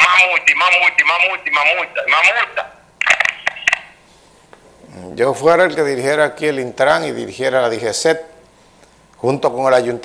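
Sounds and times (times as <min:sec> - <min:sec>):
caller speaking: 0:00.0 - 0:04.0
clicks and crackles on phone line: 0:03.0 - 0:03.9.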